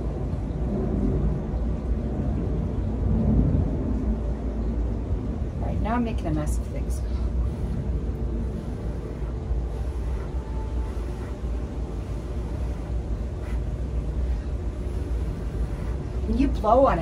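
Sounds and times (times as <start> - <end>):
low rumble: 0.0 - 17.0
person blowing on paint: 7.4 - 16.3.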